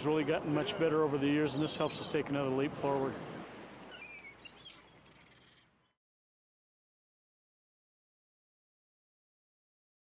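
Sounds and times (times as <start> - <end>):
ocean surf on sandy beach: 0.0 - 4.5.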